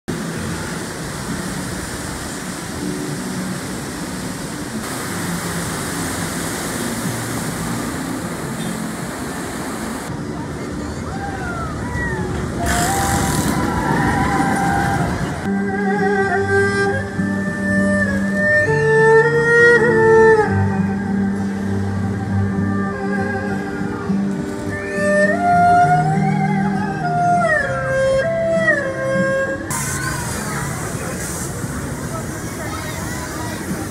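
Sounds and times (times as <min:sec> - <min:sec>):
outdoor background noise: 0:00.1 - 0:33.9
guitar and violin music: 0:00.2 - 0:33.9.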